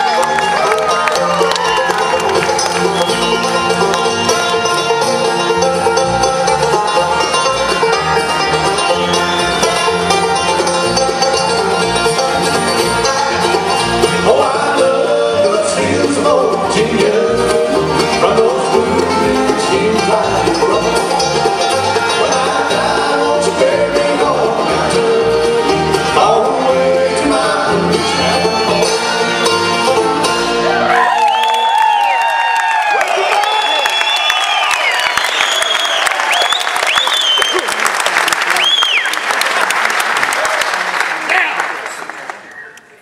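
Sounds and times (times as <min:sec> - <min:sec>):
acoustic guitar: 0:00.0 - 0:31.1
upright bass: 0:00.0 - 0:31.1
banjo: 0:00.0 - 0:31.2.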